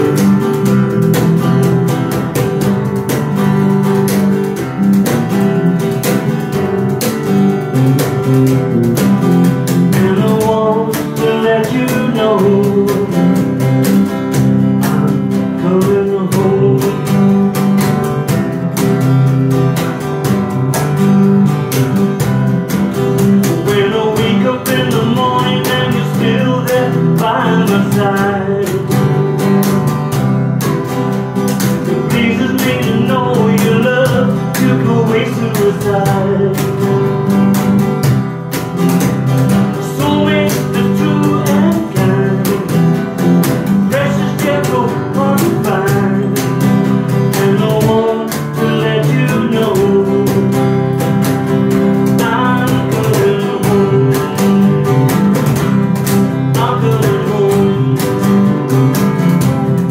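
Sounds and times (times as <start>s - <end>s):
bass guitar: 0.0s - 59.9s
cajon beat: 0.0s - 59.9s
strummed acoustic guitar: 0.0s - 59.9s
man singing: 8.0s - 19.0s, 23.0s - 30.7s, 31.6s - 37.6s, 39.1s - 59.9s.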